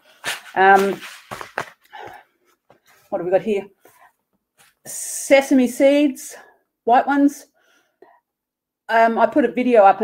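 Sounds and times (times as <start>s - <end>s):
short breath: 7.6s - 8.2s.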